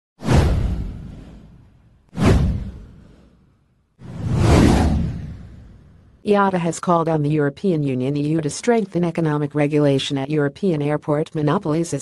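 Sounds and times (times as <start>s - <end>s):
whoosh sound effects: 2.2s - 6.0s.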